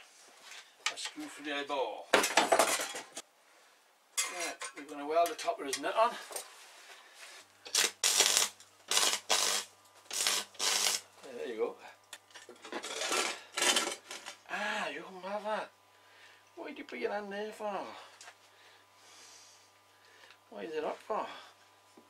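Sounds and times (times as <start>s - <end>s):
welder electrical hum: 0.0s - 22.0s
welding crackle: 7.6s - 11.3s.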